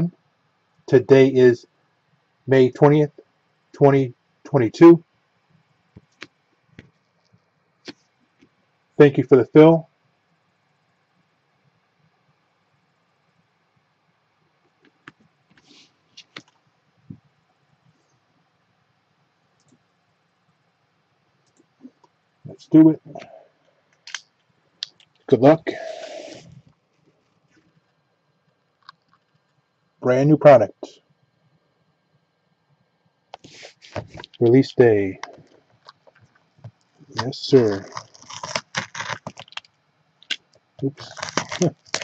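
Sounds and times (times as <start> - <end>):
plastic wrap crinkling and tearing: 37.1 - 39.7, 41.0 - 42.0.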